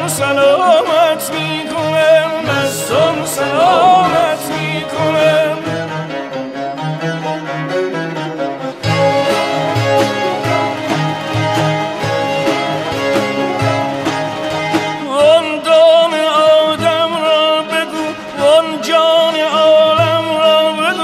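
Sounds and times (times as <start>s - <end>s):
bowed string instrument: 0.0s - 21.0s
plucked long-necked lutes: 0.0s - 21.0s.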